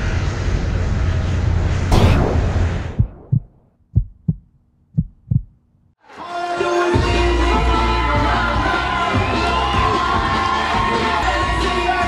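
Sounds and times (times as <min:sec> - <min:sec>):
heartbeat thumps: 0:02.9 - 0:05.6.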